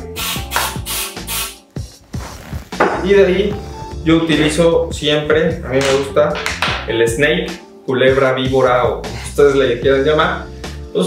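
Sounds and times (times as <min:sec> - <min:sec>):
background music with beat: 0:00.0 - 0:11.0
aerosol spray hiss: 0:00.2 - 0:01.6.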